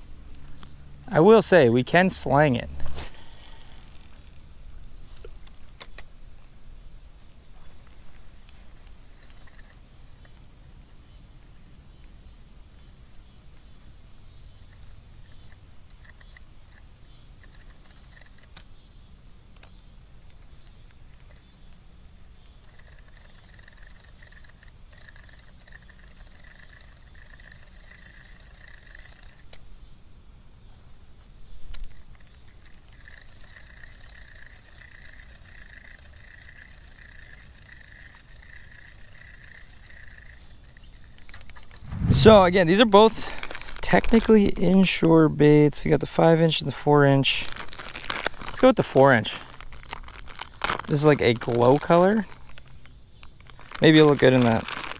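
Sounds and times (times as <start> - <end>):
fishing reel clicking: 22.7 - 29.4, 32.6 - 40.4.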